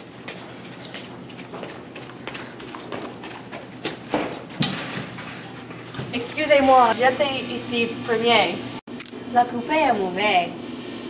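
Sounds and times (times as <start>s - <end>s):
footsteps running on tiled floor: 0.0s - 7.0s.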